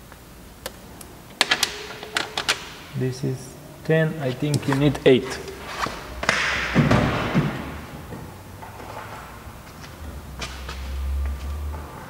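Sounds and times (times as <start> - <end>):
metal sockets clinking: 1.4 - 2.9.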